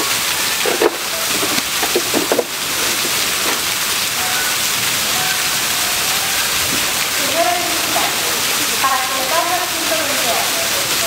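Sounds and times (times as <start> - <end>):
faint voices: 0.0 - 11.0
rushing water: 0.0 - 11.0.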